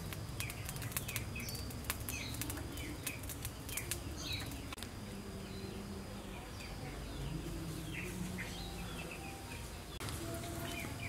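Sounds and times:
charcoal crackling and popping: 0.0 - 5.1, 6.4 - 11.0
birds chirping: 0.0 - 11.0.

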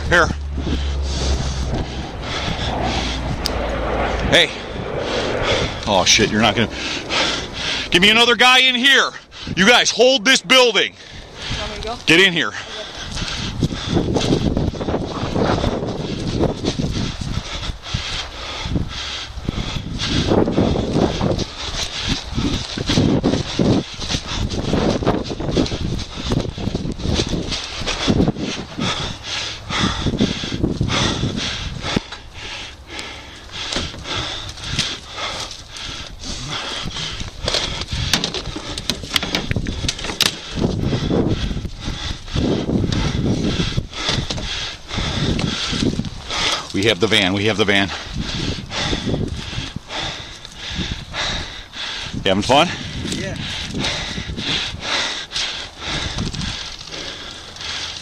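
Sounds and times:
wind on microphone: 0.0 - 10.2, 10.9 - 58.0.

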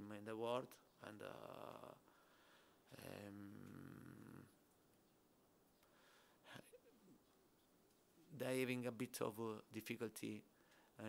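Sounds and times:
man saying um: 2.9 - 4.5.

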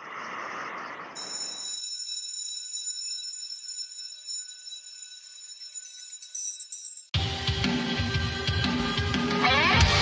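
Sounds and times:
high-pitched test tone: 1.2 - 7.2.

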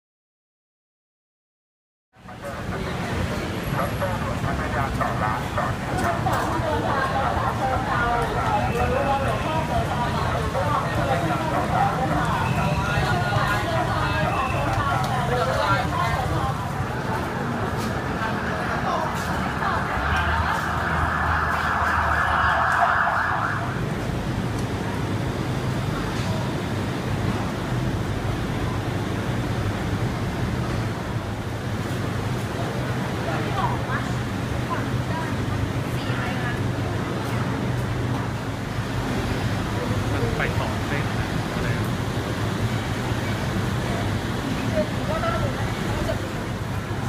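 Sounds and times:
crowd chatter: 2.2 - 47.0
siren-like wailing: 18.3 - 24.2.

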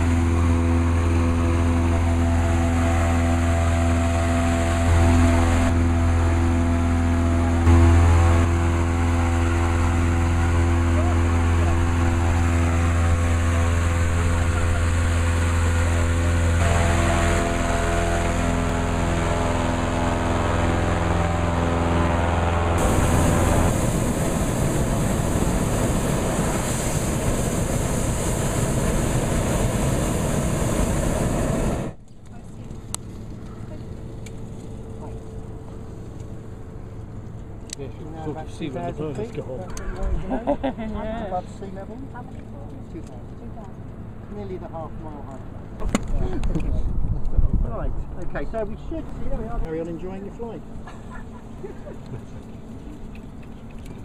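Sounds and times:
propane burner rushing: 0.0 - 32.0
inflator fan engine running: 0.0 - 54.0.

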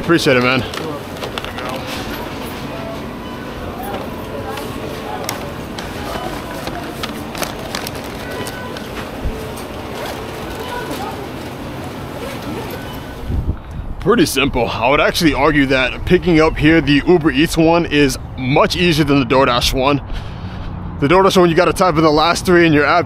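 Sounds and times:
background voices: 0.0 - 13.5
short beeps: 1.8 - 4.9
paper bag handled: 3.9 - 13.2.

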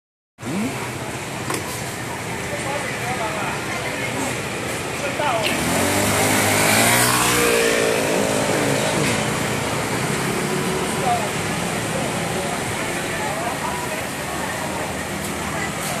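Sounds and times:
road noise: 0.4 - 16.0
scooter engine passing: 0.4 - 16.0.

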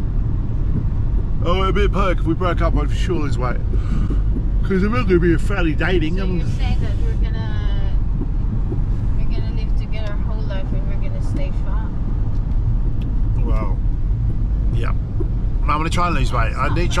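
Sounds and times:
car engine and tyres rumbling: 0.0 - 17.0
faint voice: 13.4 - 13.8.

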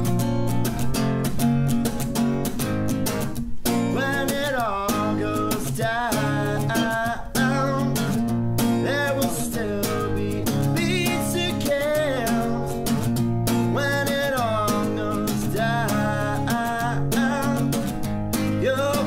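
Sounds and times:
acoustic guitar strumming: 0.0 - 19.0
man singing: 3.7 - 19.0.

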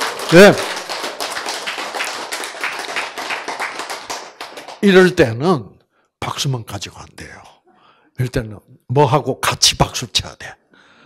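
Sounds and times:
audience clapping: 0.0 - 5.2.

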